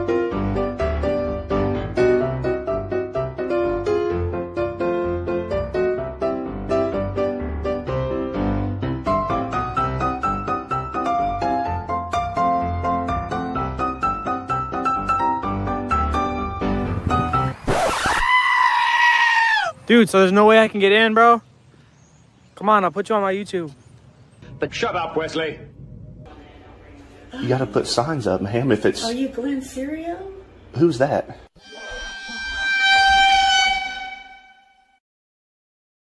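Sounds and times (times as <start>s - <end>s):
piano music: 0.0s - 17.6s, 31.6s - 35.0s
high-pitched scream: 17.7s - 19.8s, 31.6s - 35.0s
steady horn-like tone: 31.6s - 35.0s.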